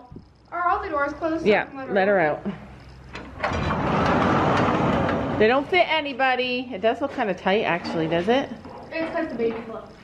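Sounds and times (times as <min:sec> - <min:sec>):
sliding door rolling on metal track: 0:03.2 - 0:05.7.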